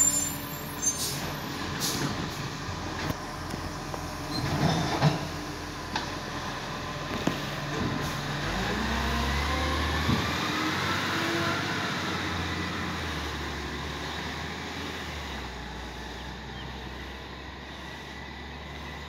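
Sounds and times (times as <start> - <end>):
garbage truck engine pulling away: 0.0 - 19.0.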